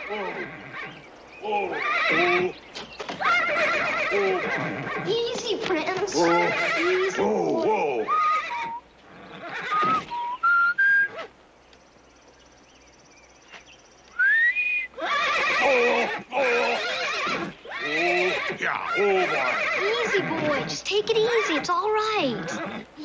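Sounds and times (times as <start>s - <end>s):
horse whinnying: 0.0s - 5.2s, 6.1s - 11.3s, 14.2s - 22.9s
whistled notes: 9.8s - 11.3s, 14.1s - 15.0s.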